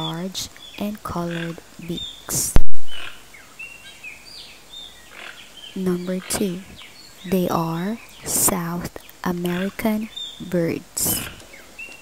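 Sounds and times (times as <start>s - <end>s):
birds chirping: 0.0s - 12.0s
steady outdoor hiss: 0.0s - 12.0s.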